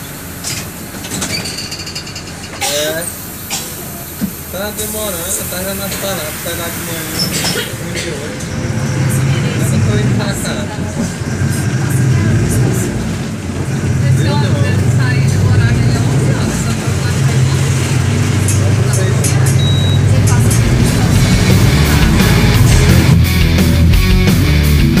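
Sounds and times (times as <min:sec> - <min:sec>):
bus engine and road noise: 0:00.0 - 0:25.0
voices talking: 0:02.4 - 0:23.8.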